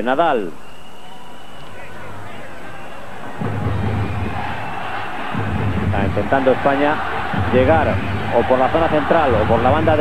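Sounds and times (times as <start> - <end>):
stadium crowd murmur: 1.2 - 5.6.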